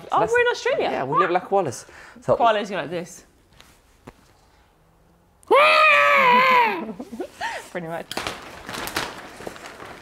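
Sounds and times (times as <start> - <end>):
person squealing: 5.5 - 7.0.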